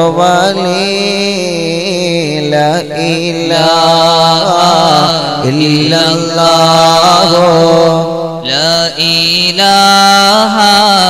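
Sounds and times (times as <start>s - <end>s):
men chanting: 3.4s - 11.0s.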